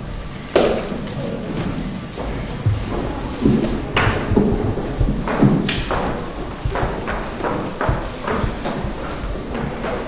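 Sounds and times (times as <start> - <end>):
footsteps on hollow wooden floor: 1.6 - 10.0.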